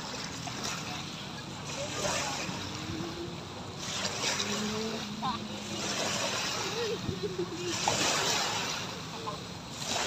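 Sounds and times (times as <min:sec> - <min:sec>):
faint voices: 0:00.0 - 0:09.9
small waves washing on shore: 0:00.0 - 0:10.0.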